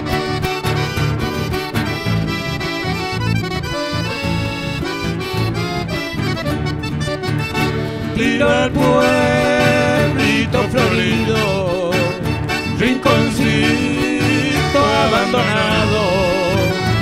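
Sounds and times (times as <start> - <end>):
button accordion melody: 0.0 - 17.0
electric bass: 0.0 - 17.0
strummed acoustic guitars: 0.0 - 17.0.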